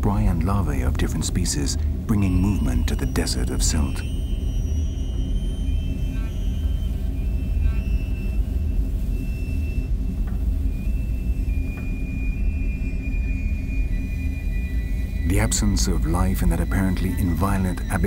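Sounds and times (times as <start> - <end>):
deep rumbling drone: 0.0 - 18.0
faint high held tones: 0.3 - 18.0.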